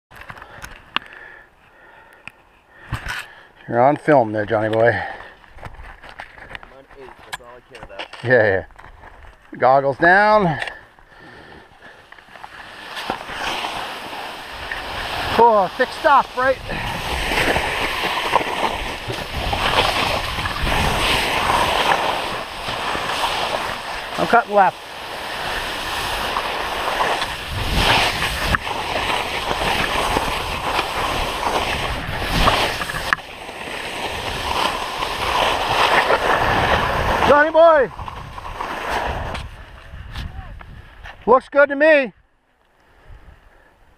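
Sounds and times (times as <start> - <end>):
skis scraping over snow: 3.1 - 41.4.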